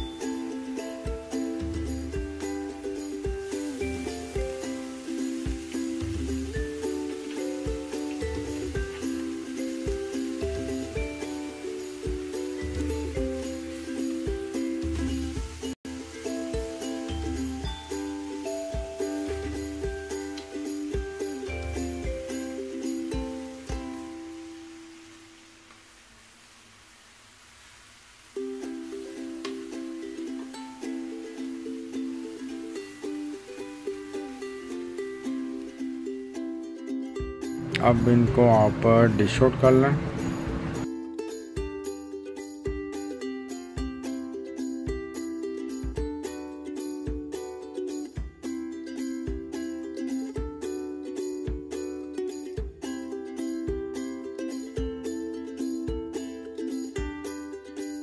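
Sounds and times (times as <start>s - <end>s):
music with steady beat: 0.0s - 24.4s, 37.1s - 39.0s, 39.9s - 57.6s.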